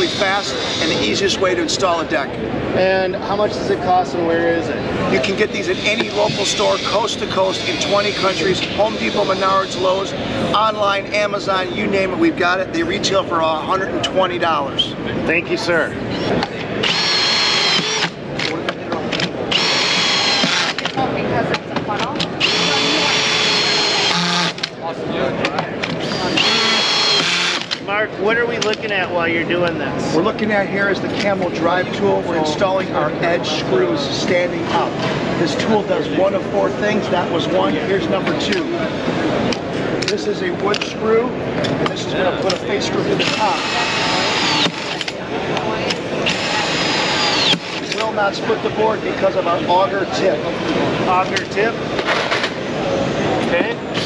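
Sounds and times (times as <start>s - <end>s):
cordless drill whine: 0.0s - 1.1s, 5.7s - 10.0s, 16.8s - 18.2s, 19.5s - 20.8s, 22.4s - 24.6s, 26.0s - 27.7s, 43.2s - 45.1s, 46.2s - 48.0s
crowd chatter: 0.0s - 54.0s.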